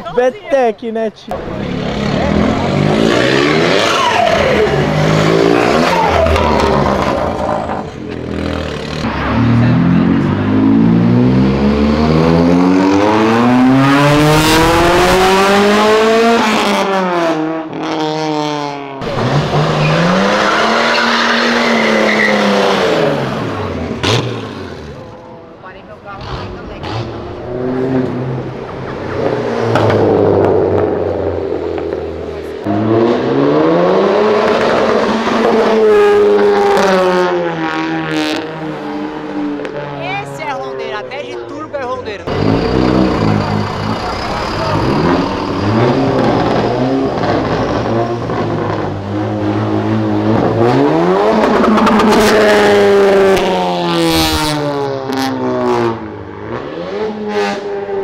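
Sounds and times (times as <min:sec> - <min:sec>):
car engines revving past: 0:01.3 - 0:58.0.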